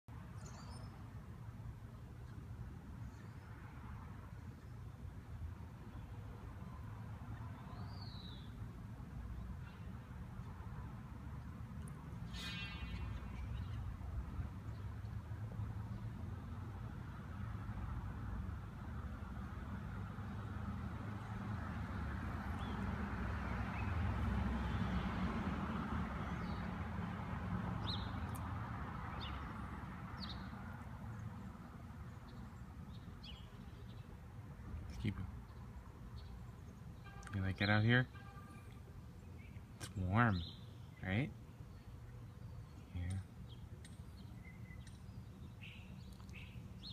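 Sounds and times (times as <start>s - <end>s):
low rumble of road traffic: 0.1s - 46.9s
vehicle passing: 10.6s - 32.0s
short bird chirps: 12.2s - 13.9s.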